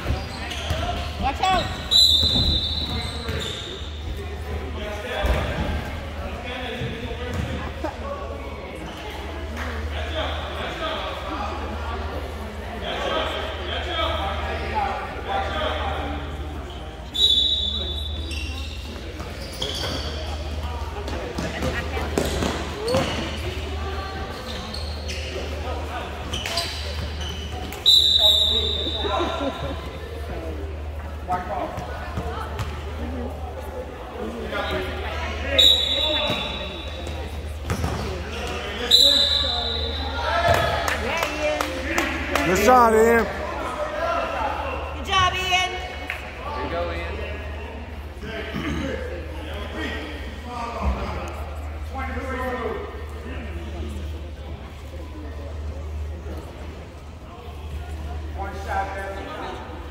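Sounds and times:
voices echoing in hall: 0:00.0 - 0:59.9.

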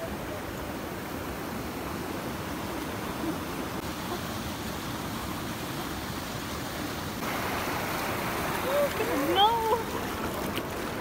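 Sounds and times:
river water flowing over ledge: 0:00.0 - 0:11.0.

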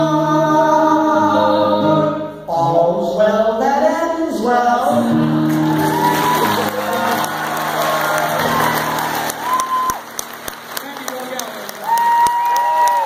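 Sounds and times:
audience applauding and cheering: 0:05.2 - 0:13.0.

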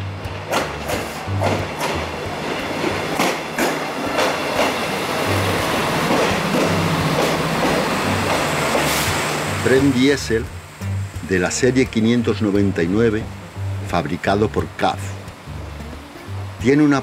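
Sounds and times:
soft background music: 0:00.0 - 0:17.0
train running noise: 0:00.0 - 0:17.0
wheels knocking over rail joints: 0:00.2 - 0:09.4.

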